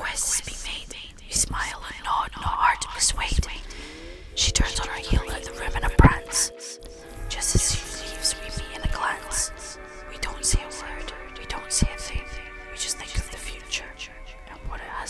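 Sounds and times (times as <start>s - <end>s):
whispered voices: 0.0s - 15.0s
music with held tones: 3.3s - 15.0s.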